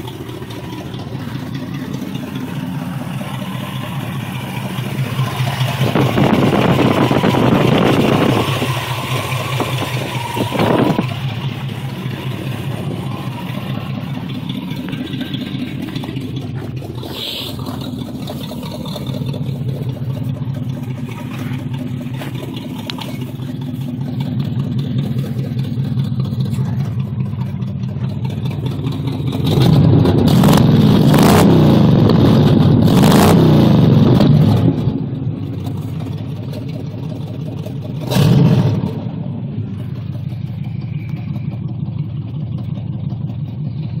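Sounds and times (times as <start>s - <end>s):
engine exhaust rumbling and revving: 0.0s - 44.0s.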